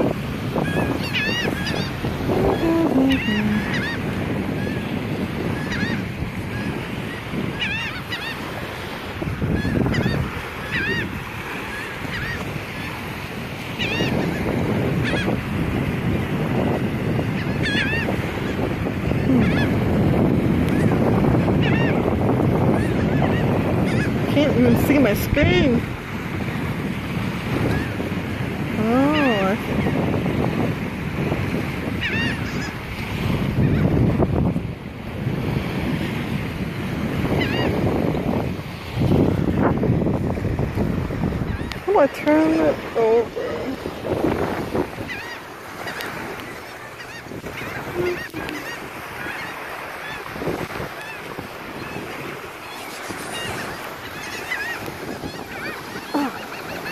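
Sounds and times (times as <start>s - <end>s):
gulls calling: 0.0s - 15.5s, 16.6s - 26.7s, 27.5s - 28.0s, 28.7s - 30.0s, 31.8s - 34.0s, 37.2s - 56.9s
small surf at shoreline: 0.0s - 56.9s
wind on microphone: 0.0s - 56.9s.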